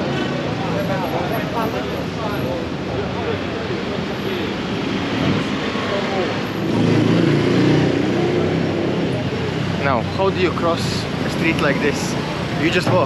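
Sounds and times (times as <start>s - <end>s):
city street traffic: 0.0s - 13.0s
vehicle engine passing close: 5.0s - 10.0s.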